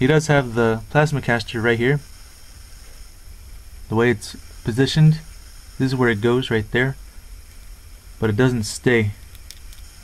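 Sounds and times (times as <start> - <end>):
man speaking: 0.0 - 2.1, 3.9 - 7.0, 8.2 - 9.2
faint room noise hiss: 0.0 - 10.0
low hum: 0.0 - 10.0.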